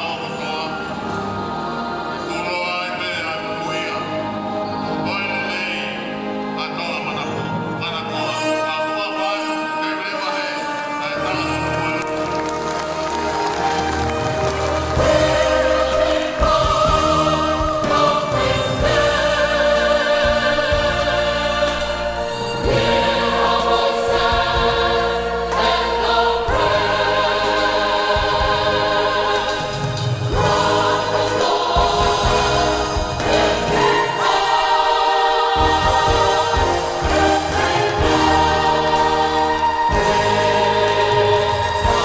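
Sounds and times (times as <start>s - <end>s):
youth choir singing: 13.2s - 42.0s.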